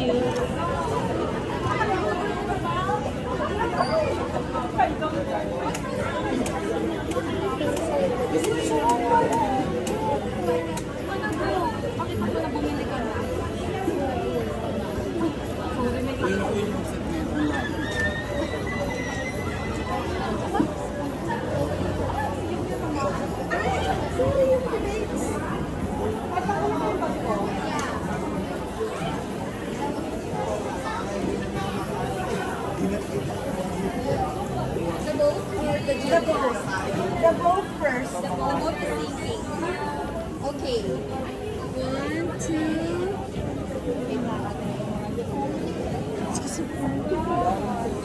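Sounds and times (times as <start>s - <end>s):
crowd babble: 0.0s - 48.0s.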